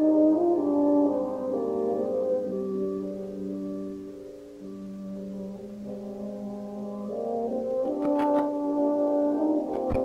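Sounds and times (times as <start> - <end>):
concert band brass chords: 0.0 - 10.0.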